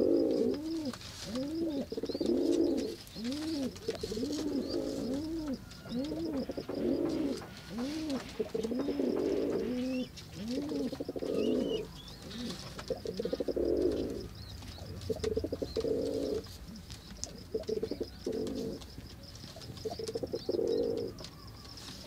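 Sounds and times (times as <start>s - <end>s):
dove cooing: 0.0s - 22.0s.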